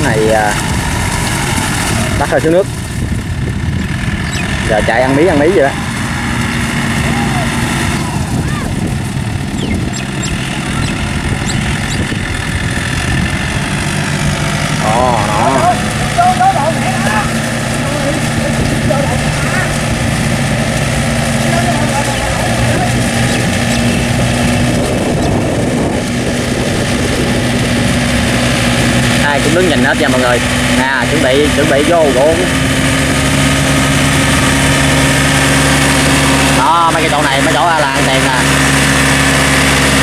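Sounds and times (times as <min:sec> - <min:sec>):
tractor diesel engine under load: 0:00.0 - 0:40.0
wheels churning through mud: 0:00.0 - 0:40.0
voices talking in background: 0:04.3 - 0:09.6, 0:14.7 - 0:24.9.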